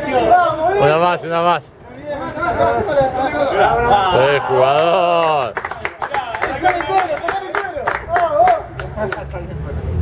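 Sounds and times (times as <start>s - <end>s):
men calling out and cheering: 0.0s - 9.1s
scattered hand claps: 5.4s - 9.3s.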